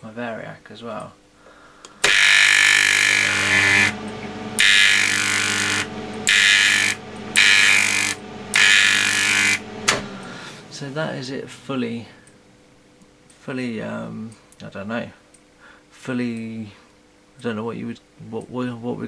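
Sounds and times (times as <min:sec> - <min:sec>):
mains hum: 0:00.0 - 0:19.0
high-voltage electric arc: 0:02.0 - 0:12.1.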